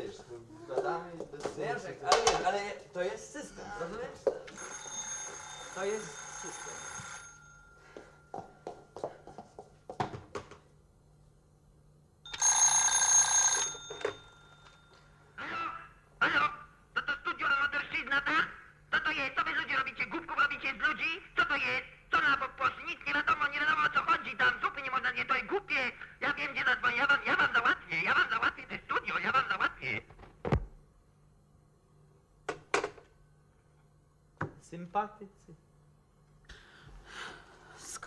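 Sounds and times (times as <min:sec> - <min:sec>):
telephone bell ringing: 0:04.5 - 0:09.0, 0:12.3 - 0:15.4.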